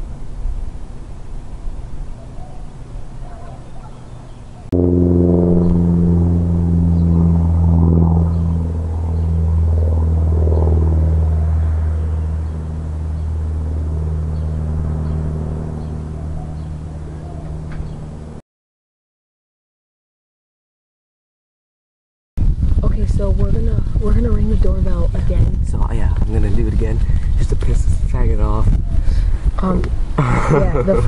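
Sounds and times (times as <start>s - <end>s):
low machine hum: 0.0s - 18.4s.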